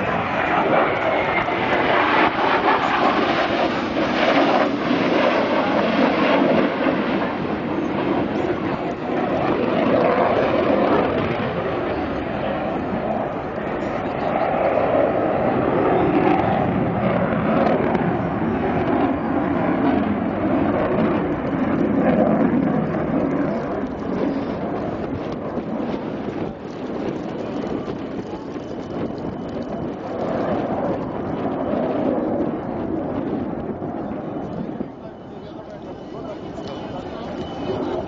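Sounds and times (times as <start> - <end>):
jet engine rush: 0.0 - 38.0.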